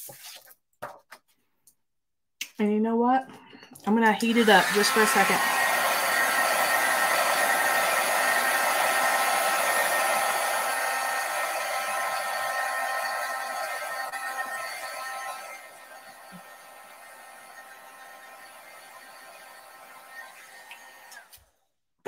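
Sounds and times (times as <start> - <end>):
heat tool blowing air: 4.2 - 21.3.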